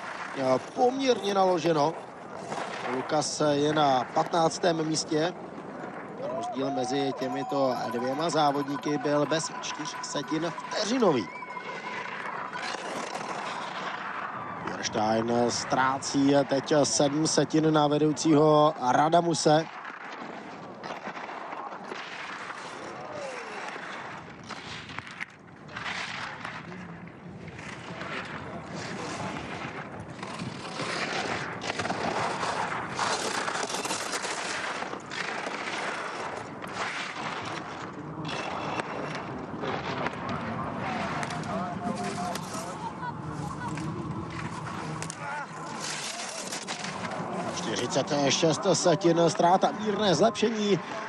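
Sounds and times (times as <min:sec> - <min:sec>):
skis carving on hard snow: 0:00.0 - 0:51.0.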